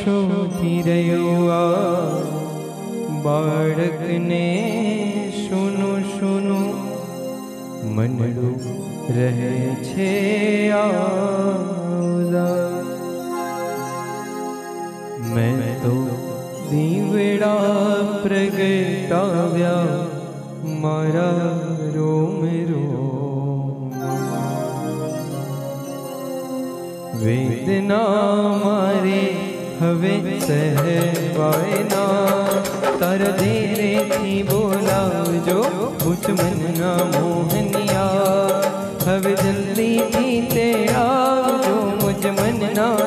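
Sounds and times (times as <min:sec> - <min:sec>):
person singing long wavering notes: 0:00.0 - 0:43.0
sustained musical accompaniment: 0:00.0 - 0:43.0.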